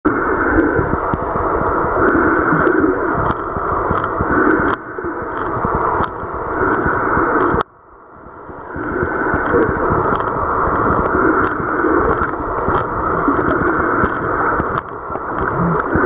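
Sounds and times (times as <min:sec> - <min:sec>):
muffled underwater rushing water: 0:00.0 - 0:16.0
faint clicks and crackles: 0:00.1 - 0:16.0.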